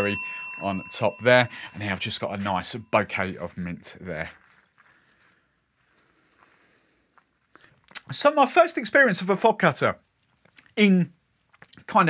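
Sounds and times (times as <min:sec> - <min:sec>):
crunching crushed ice: 0:01.8 - 0:07.8.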